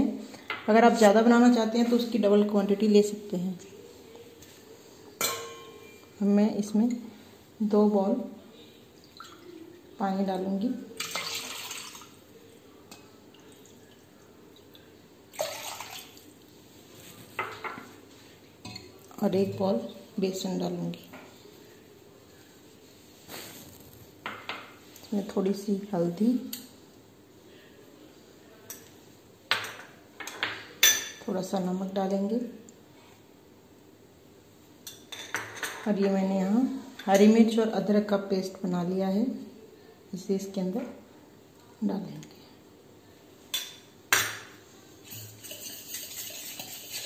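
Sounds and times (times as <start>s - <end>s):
spoon clinking against bowl: 5.2s - 6.2s
water splashing into a pot: 11.0s - 12.2s, 13.3s - 16.4s.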